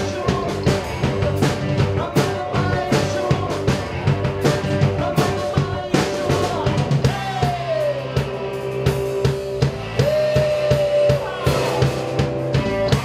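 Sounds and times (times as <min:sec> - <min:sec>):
bass: 0:00.0 - 0:13.0
drum kit beat: 0:00.0 - 0:13.0.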